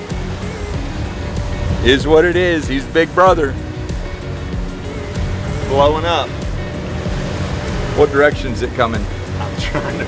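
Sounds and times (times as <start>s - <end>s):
background music: 0.0s - 10.0s
sea noise: 0.0s - 10.0s
wind: 0.0s - 10.0s.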